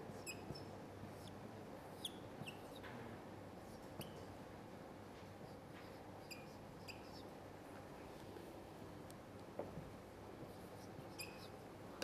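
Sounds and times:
marker squeaking on whiteboard: 0.0 - 2.9, 3.6 - 4.3, 5.4 - 7.4, 10.4 - 11.6
faint room hum: 0.0 - 12.0.

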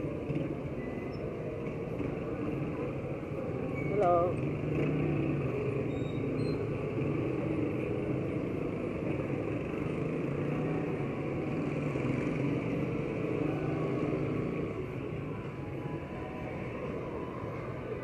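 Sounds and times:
road noise: 0.0 - 18.0
motorcycles passing: 1.5 - 18.0.

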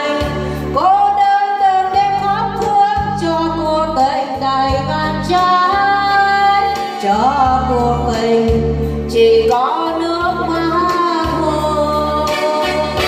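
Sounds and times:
electronic keyboard with bass: 0.0 - 13.0
woman singing into microphone: 0.0 - 13.0.

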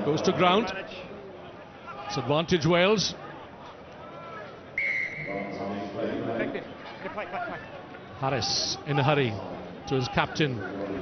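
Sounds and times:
referee's whistle blast: 4.8 - 5.5.

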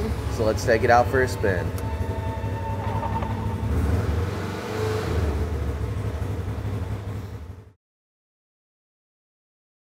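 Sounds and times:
engine low rumble: 0.0 - 7.8.

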